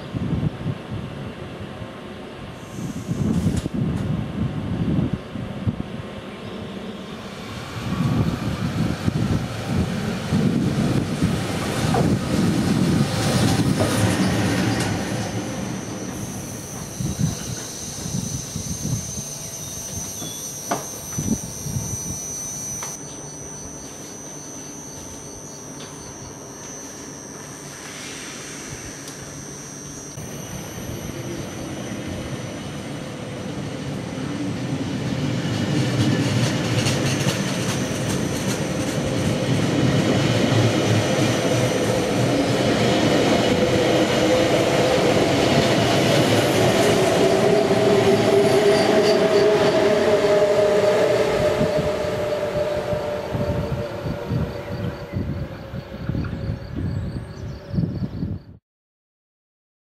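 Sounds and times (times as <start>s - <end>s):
train wheel and track noise: 0.0s - 58.4s
traction motor whine: 6.8s - 34.8s, 36.0s - 57.0s.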